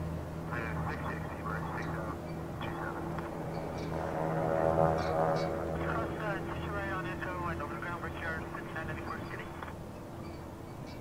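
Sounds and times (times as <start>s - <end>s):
jet engines humming and whining: 0.0s - 11.0s.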